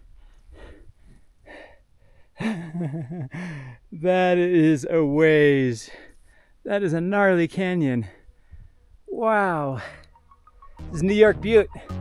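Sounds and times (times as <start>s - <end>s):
man laughing: 2.4s - 3.4s.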